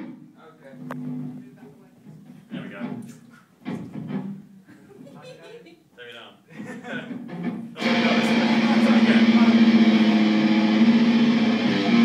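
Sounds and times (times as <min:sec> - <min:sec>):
indistinct talking: 0:07.8 - 0:10.8.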